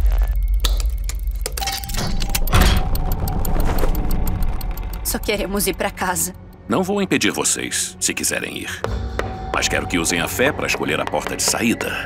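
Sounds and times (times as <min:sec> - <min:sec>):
deep low drone: 0:00.0 - 0:08.0
rapid mechanical clicking: 0:02.2 - 0:06.7.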